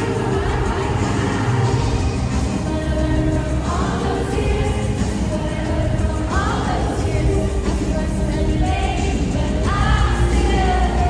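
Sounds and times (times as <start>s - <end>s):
live pop music with heavy bass: 0.0s - 11.0s.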